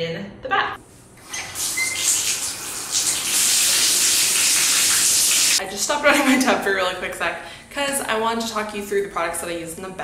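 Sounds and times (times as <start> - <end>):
water running into bathtub: 1.2 - 5.6.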